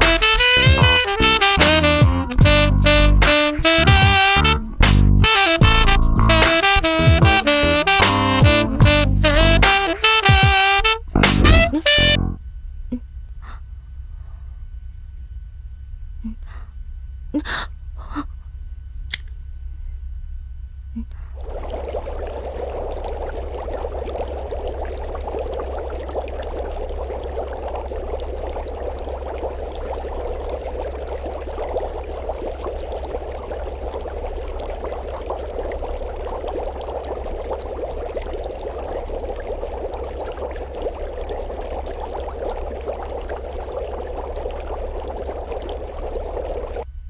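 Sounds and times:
running water rushing: 0.0s - 1.8s, 21.4s - 46.8s
low steady hum: 0.0s - 47.0s.

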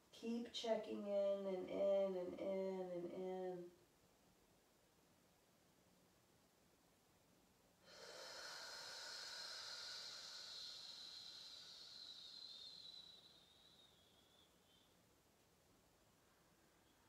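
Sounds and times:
person exhaling with a hiss: 7.8s - 14.9s.

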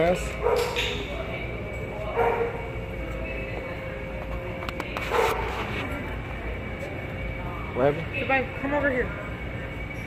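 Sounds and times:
dog barking: 0.4s - 0.8s, 2.2s - 2.7s, 5.1s - 5.5s.

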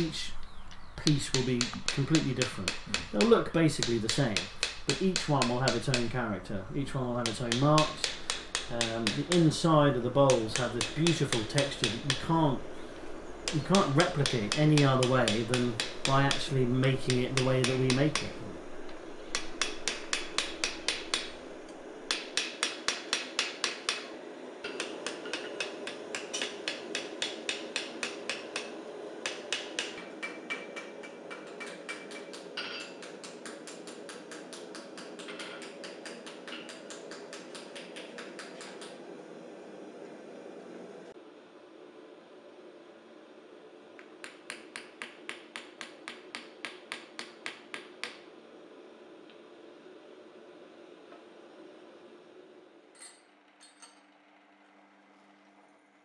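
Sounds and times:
steady background hum: 0.0s - 56.0s
hammer tapping copper bowl: 1.3s - 6.1s, 7.2s - 9.6s, 13.4s - 18.4s, 19.3s - 21.4s.

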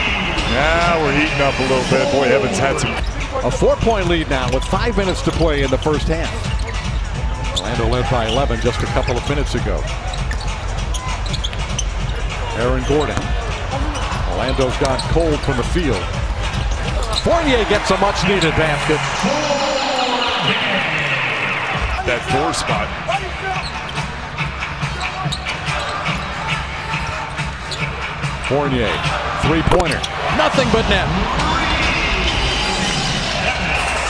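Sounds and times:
arena crowd noise: 0.0s - 34.0s.

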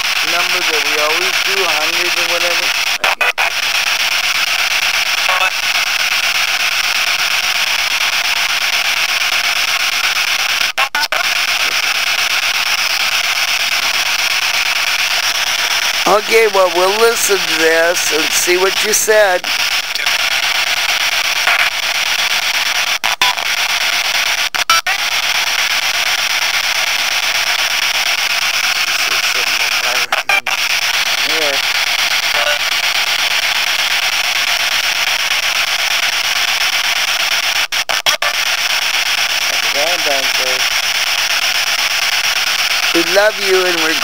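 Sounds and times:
radio static hiss: 0.0s - 44.0s
faint voice fragments: 16.1s - 20.3s, 28.8s - 30.6s.

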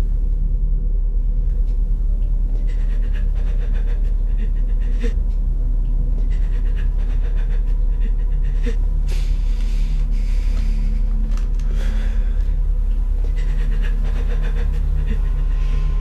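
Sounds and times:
steady low drone: 0.0s - 16.0s
woman panting heavily: 2.3s - 16.0s.

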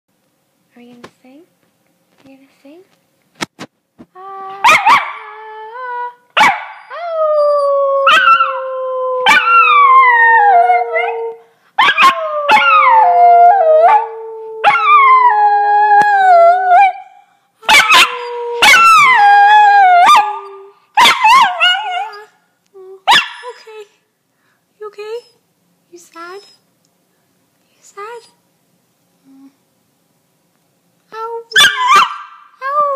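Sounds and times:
dog howling: 6.8s - 17.0s, 17.7s - 22.3s.

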